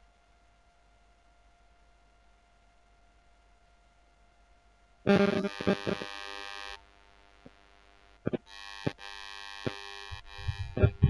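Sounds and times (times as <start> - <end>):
electronic buzzing tone: 5.0 - 11.0.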